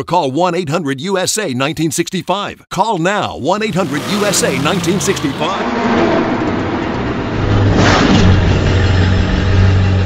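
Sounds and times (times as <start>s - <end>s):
car engine running: 3.6s - 10.0s.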